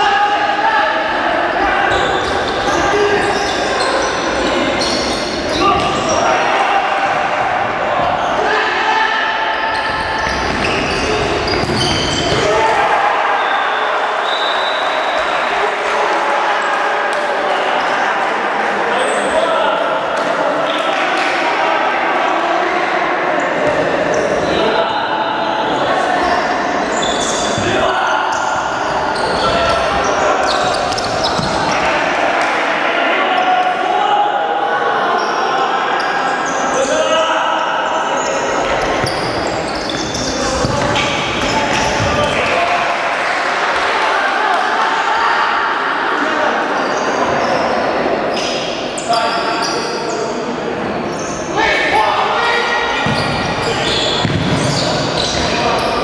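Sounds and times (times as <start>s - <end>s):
echoing voices in a hall: 0.0s - 56.0s.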